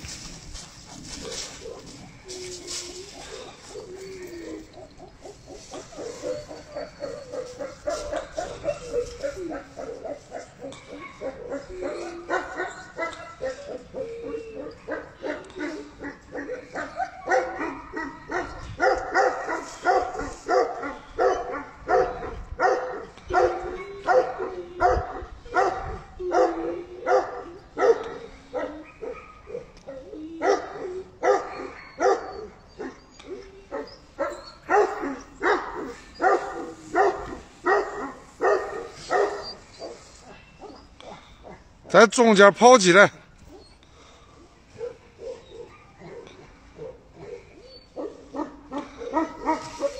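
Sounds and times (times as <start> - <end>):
dog barking deeply: 14.6 - 29.7, 34.2 - 40.0, 44.8 - 49.9.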